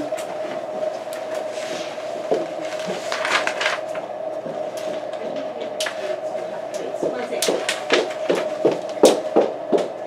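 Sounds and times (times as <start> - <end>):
steady hum: 0.0 - 10.0.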